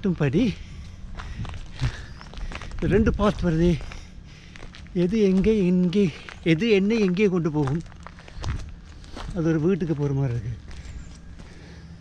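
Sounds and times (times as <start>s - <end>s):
man talking: 0.0s - 0.7s, 2.8s - 3.9s, 4.9s - 7.9s, 9.3s - 10.6s
soft footsteps on a path: 0.0s - 12.0s.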